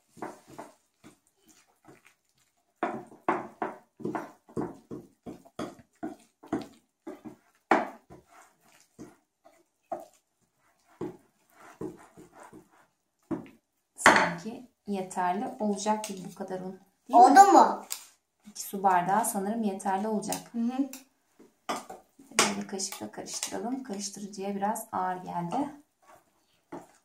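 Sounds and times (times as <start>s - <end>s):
wire whisk stirring batter in glass bowl: 0.0s - 13.5s, 25.4s - 27.0s.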